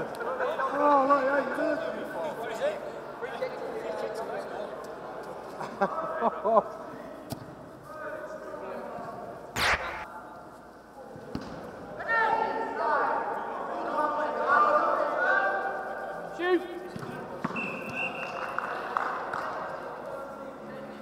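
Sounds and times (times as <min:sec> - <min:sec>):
loud echoing ball strike: 0:09.6 - 0:10.1.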